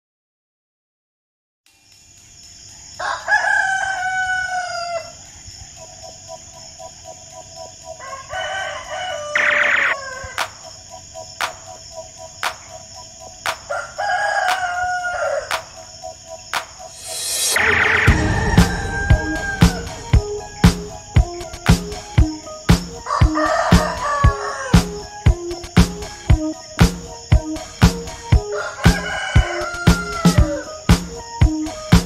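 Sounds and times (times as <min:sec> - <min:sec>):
rooster crowing: 0:03.0 - 0:05.2, 0:08.0 - 0:10.6, 0:13.6 - 0:15.8, 0:17.1 - 0:21.9, 0:23.0 - 0:25.0, 0:28.4 - 0:30.8
dance music with kick drum: 0:18.1 - 0:32.0.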